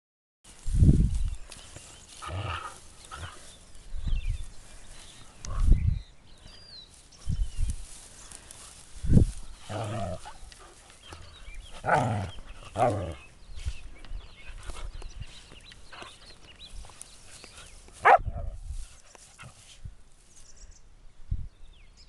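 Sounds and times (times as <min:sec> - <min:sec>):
dog growls and grunts: 0:09.6 - 0:10.3, 0:11.8 - 0:13.3.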